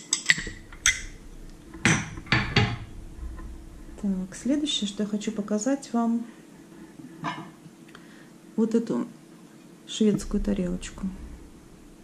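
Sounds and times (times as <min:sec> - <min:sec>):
porcelain bowls clinking: 0:00.0 - 0:01.2, 0:01.8 - 0:02.9.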